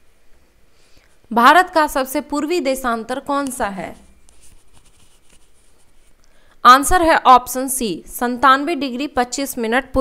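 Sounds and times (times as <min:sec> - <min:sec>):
stylus scratching on surface: 0:03.6 - 0:06.2.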